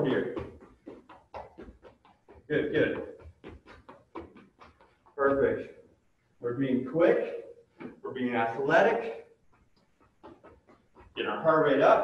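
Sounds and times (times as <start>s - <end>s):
light footsteps on hard floor: 0.0s - 6.0s, 7.6s - 8.0s.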